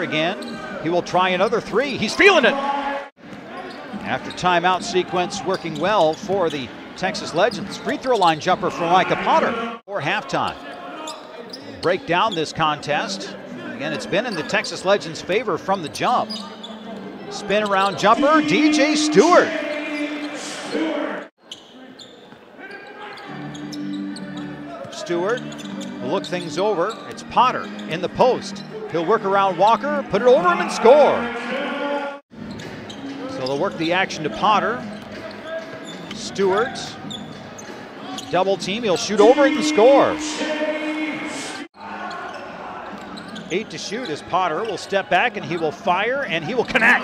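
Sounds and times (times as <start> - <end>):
arena crowd noise: 0.0 - 47.0
sneakers squeaking: 0.2 - 0.9, 3.2 - 9.4, 10.4 - 11.9, 15.3 - 30.1, 32.3 - 41.2, 41.8 - 47.0
arena music low tone: 39.0 - 41.4.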